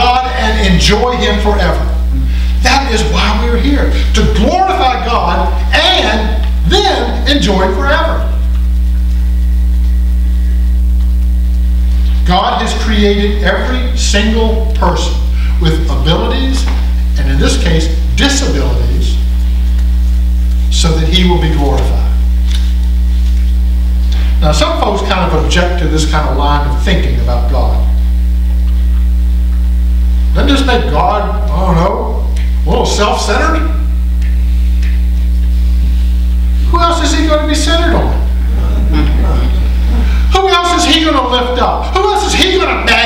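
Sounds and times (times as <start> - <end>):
low electrical hum: 0.0 - 43.0.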